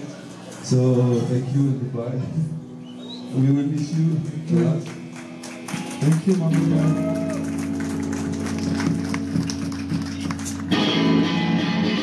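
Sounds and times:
amplified instruments droning: 2.7 - 12.0.

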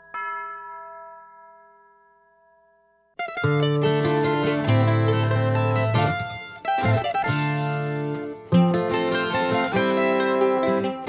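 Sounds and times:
bell-like chime: 0.0 - 4.6.

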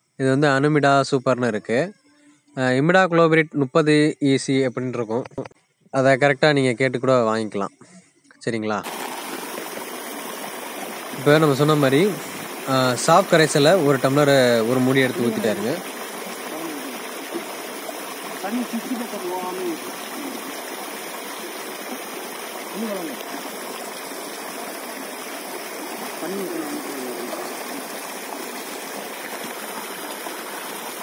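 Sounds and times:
running water rushing: 8.8 - 31.0.

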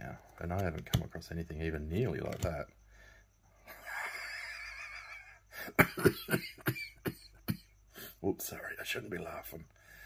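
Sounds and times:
man laughing hard: 3.7 - 7.6.

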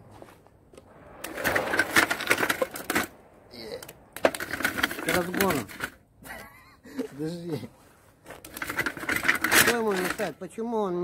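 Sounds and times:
person speaking: 4.9 - 5.9, 9.5 - 11.0
robot track links clattering: 8.4 - 10.4.

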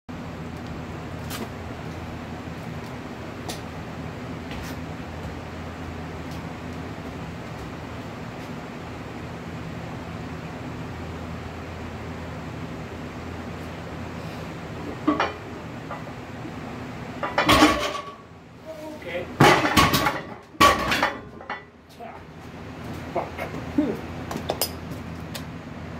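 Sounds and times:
low machine hum: 0.1 - 25.9
barbell crashing on floor: 19.4 - 21.3.

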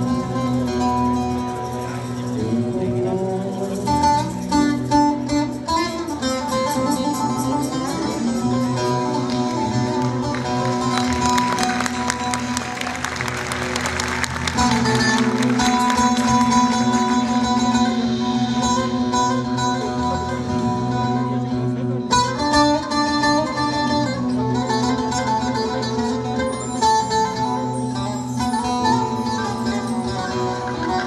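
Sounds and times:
long-necked lute played with plectrum: 0.0 - 31.0.

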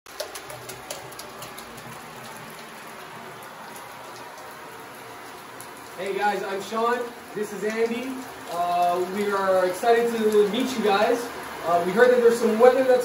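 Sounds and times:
shower water spraying on tiles: 0.1 - 13.0
water splashes: 0.1 - 13.0.

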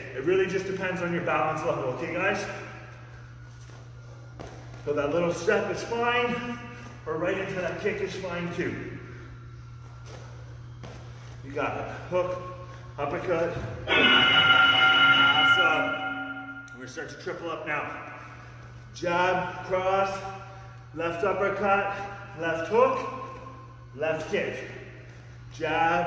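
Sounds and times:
low room hum: 0.0 - 26.0
boxing bell ringing: 13.9 - 17.0.

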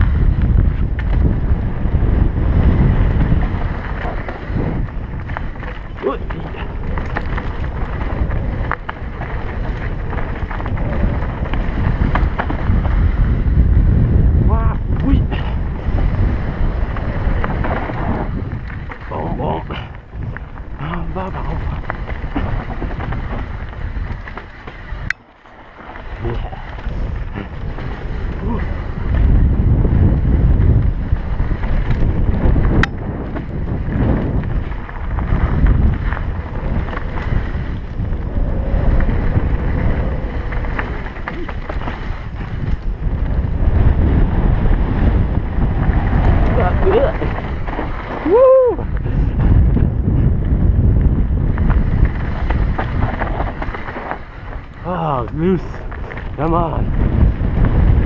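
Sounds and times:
bike ride rumble: 0.0 - 58.0
wind buffeting microphone: 0.0 - 58.0.

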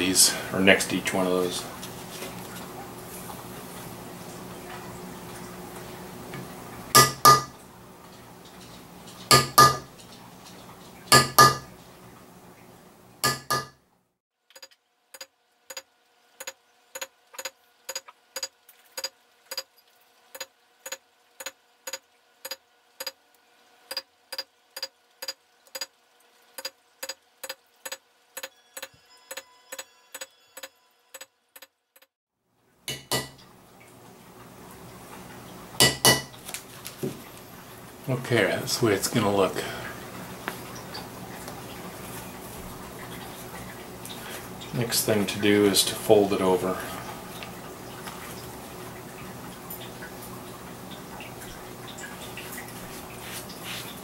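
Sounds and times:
mallet striking metal stamping tool: 7.0 - 7.5, 9.3 - 9.9, 11.1 - 11.6, 13.2 - 13.8.

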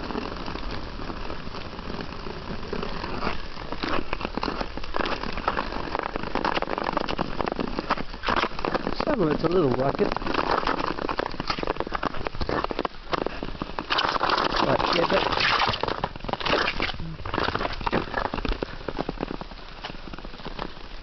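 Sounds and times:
ice skates scraping on ice: 0.0 - 21.0.

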